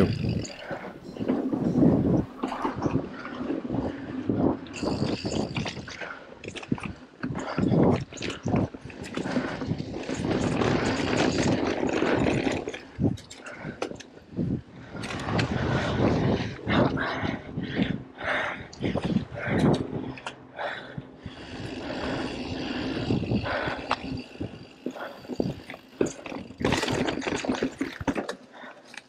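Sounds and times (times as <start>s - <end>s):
bike tyres rumbling on dirt: 0.0s - 13.7s, 20.6s - 28.2s
bike rattling over bumps: 0.0s - 28.8s.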